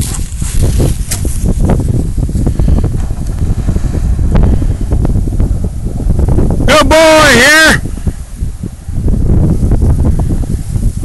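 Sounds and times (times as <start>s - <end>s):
grass rustling: 0.0s - 6.6s, 7.8s - 11.0s
wind buffeting microphone: 0.0s - 11.0s.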